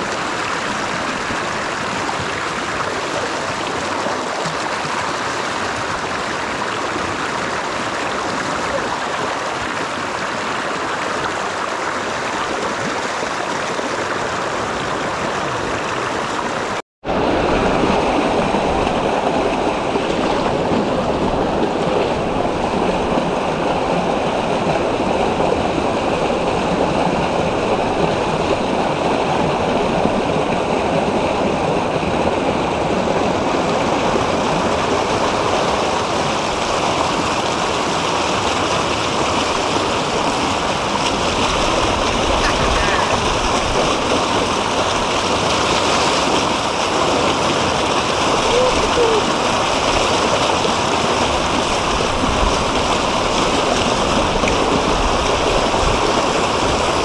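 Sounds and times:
creek water rushing over rocks: 0.0s - 57.0s.

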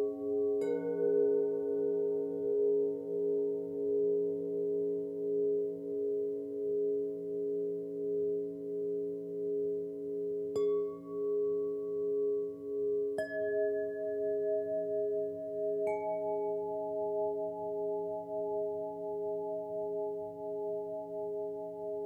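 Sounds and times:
ringing meditation chimes: 0.0s - 22.0s.

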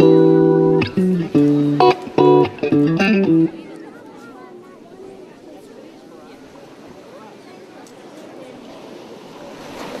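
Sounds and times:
faint voices: 0.0s - 10.0s
ocean surf: 0.0s - 10.0s.

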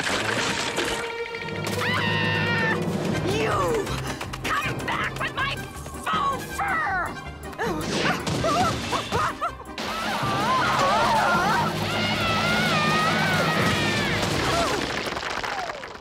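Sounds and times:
ice breaking crash: 0.0s - 1.1s, 8.1s - 16.0s.

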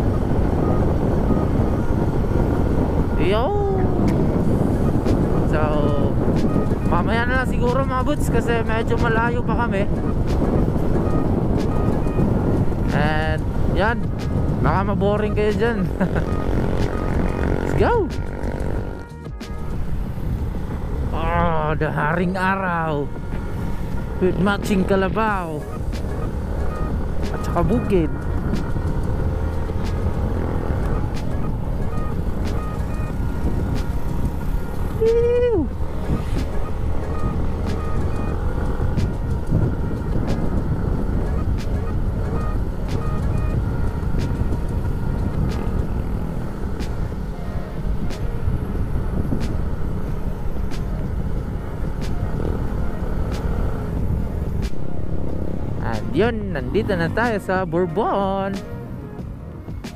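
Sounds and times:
wind rushing over microphone: 0.0s - 59.9s
motorcycle engine running: 9.8s - 58.4s.

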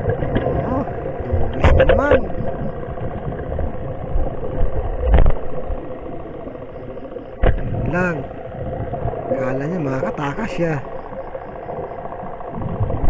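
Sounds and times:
mechanical hum through water: 0.0s - 13.0s.

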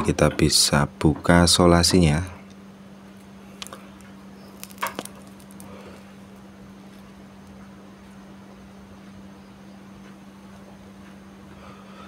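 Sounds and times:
steady low hum: 0.0s - 12.0s
tape peeling with crackles: 3.2s - 7.6s.

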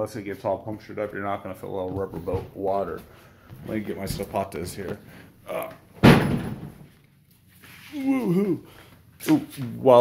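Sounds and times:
loud slam-like thud: 6.0s - 6.8s.

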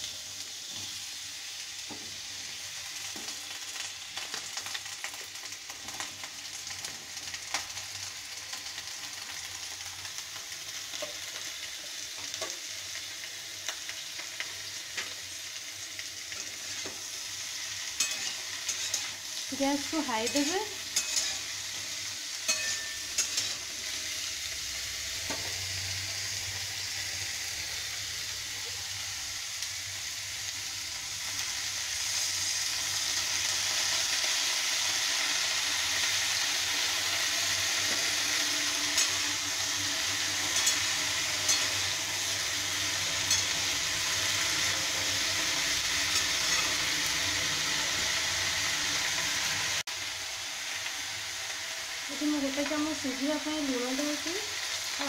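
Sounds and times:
vegetables sizzling in hot oil: 0.0s - 55.0s.

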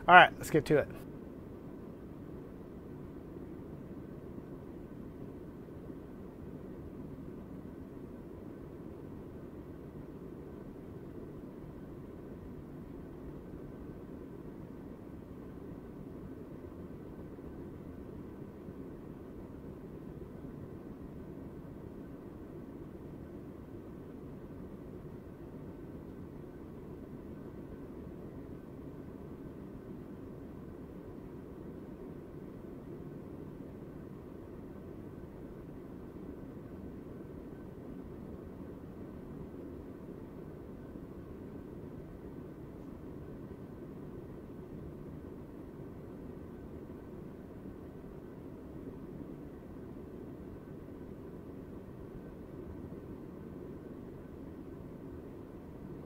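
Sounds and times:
low white noise: 0.0s - 56.0s.

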